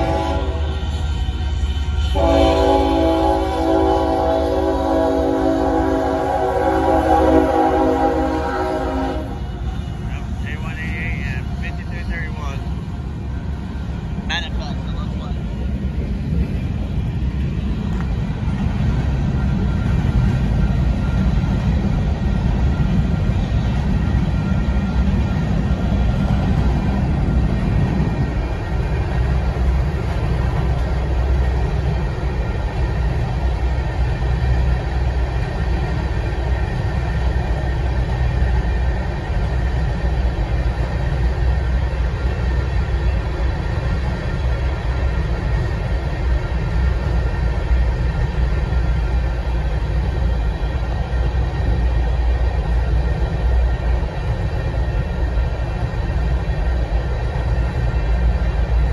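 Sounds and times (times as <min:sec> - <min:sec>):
train wheels rumbling and clattering: 0:00.0 - 0:58.9.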